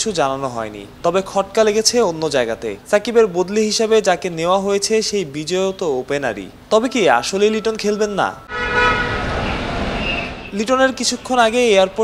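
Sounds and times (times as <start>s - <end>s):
traffic noise: 0.0s - 12.0s
vehicle horn honking: 8.4s - 10.5s.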